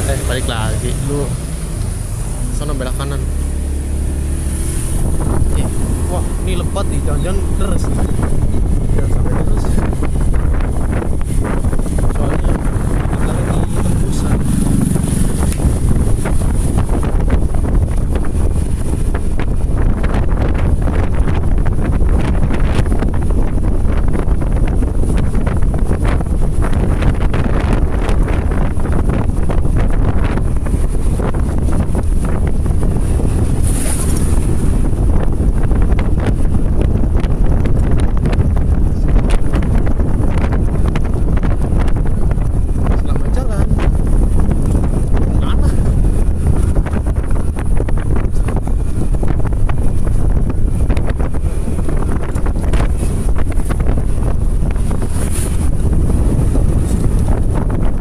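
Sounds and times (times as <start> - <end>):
vehicle driving on wet road: 0.0 - 58.0
wind buffeting microphone: 0.0 - 58.0.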